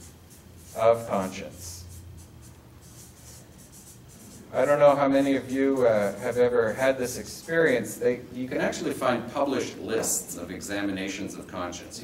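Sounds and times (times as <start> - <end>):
marker scratching on paper: 0.0 - 8.0.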